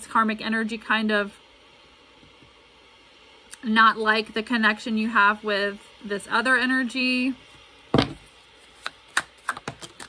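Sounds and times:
cards being shuffled by hand: 8.6 - 10.0.

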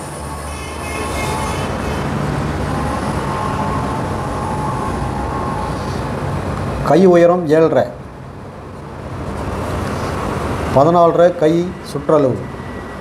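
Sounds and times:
mechanical rumble: 0.0 - 7.1
faint hum: 0.0 - 13.0.

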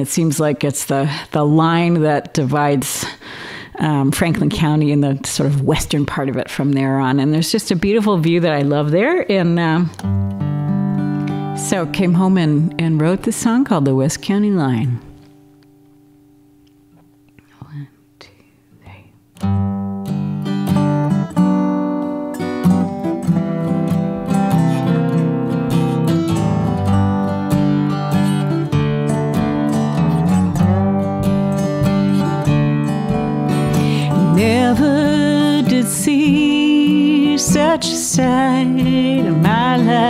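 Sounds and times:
acoustic guitar chords: 0.0 - 40.0
resonator guitar sliding notes: 9.9 - 15.8, 19.4 - 40.0.

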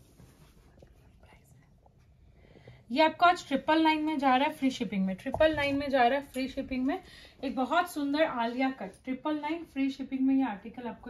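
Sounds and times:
faint fabric rustling: 0.0 - 11.0
woman speaking: 2.9 - 11.0.

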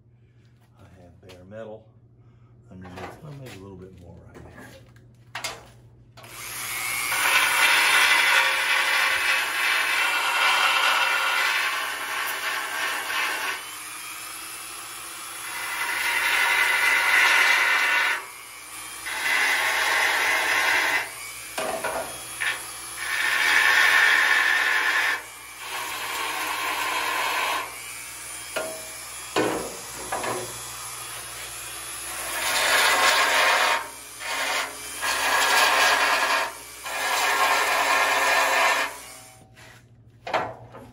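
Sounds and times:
belt sander grinding metal: 6.2 - 39.4.

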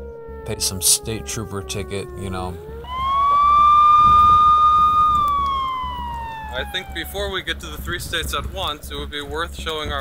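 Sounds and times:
police siren wailing: 0.0 - 7.8.

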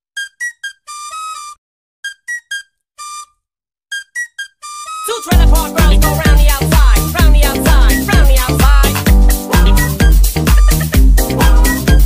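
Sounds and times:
high-pitched synthesized melody: 5.0 - 12.0.

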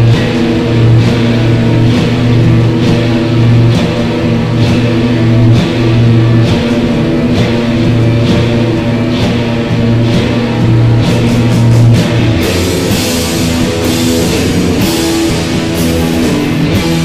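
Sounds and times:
rock band playing slow guitar: 0.0 - 17.0.

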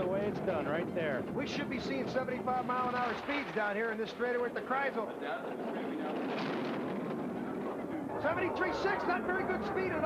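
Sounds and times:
bobsled runners rumbling on ice: 5.5 - 8.5.

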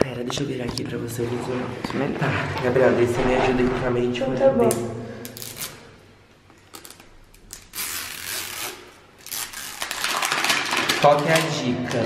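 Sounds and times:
paper wrapper tearing: 5.3 - 5.9, 6.7 - 11.6.

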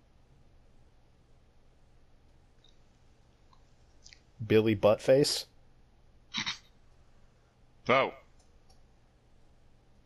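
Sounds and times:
faint clicks: 2.2 - 4.3, 8.3 - 8.9.

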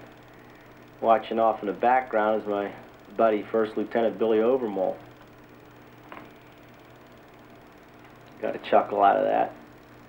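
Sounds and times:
faint hum and hiss: 0.0 - 10.0.

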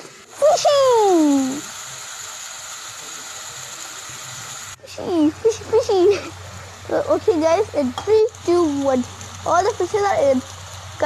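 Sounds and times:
hot oil sizzling and bubbling: 0.0 - 11.0.

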